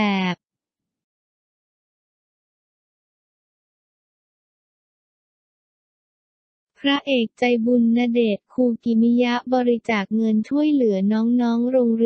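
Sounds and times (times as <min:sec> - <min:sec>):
synthetic narration voice: 0:00.0 - 0:00.4, 0:06.8 - 0:12.0.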